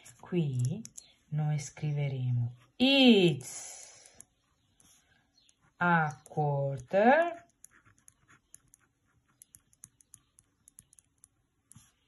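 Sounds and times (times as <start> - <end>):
pen scratching on paper: 7.3 - 11.0.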